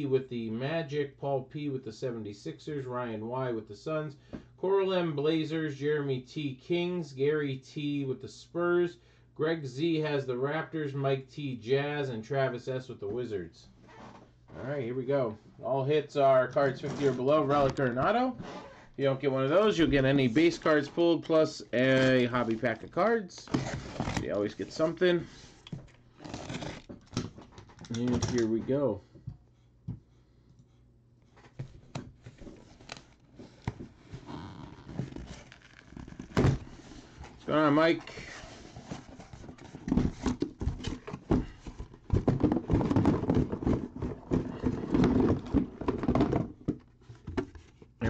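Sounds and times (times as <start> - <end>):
cardboard case being opened: 31.4 - 37.4.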